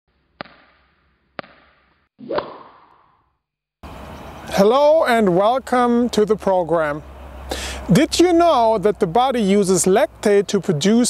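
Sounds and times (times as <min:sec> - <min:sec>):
swoosh into whip-like hit: 0:02.2 - 0:03.1
outdoor background noise: 0:03.8 - 0:11.0.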